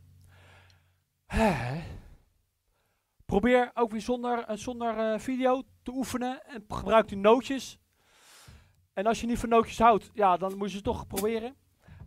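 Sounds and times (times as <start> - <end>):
man sighing: 1.3 - 2.2.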